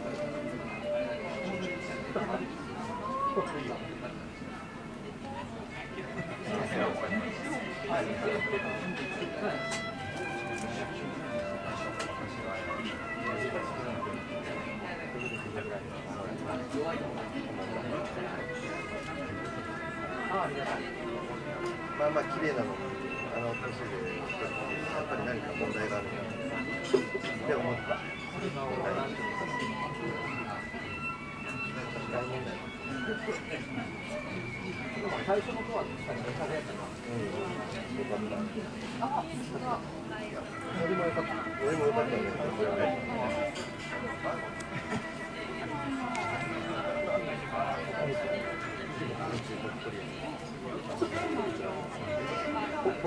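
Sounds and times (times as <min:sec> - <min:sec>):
background music with held notes: 0:00.0 - 0:53.0
people talking indistinctly: 0:00.0 - 0:53.0.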